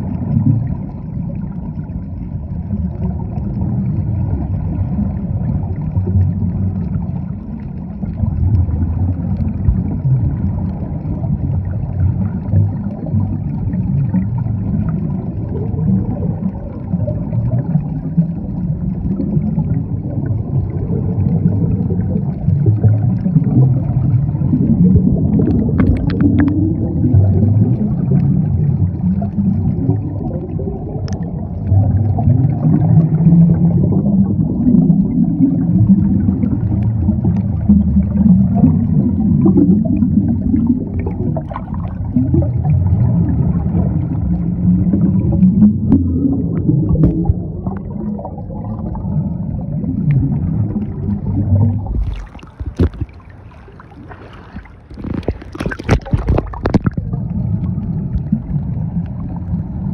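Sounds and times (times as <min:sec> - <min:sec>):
underwater rumble of moving water: 0:00.0 - 0:59.9.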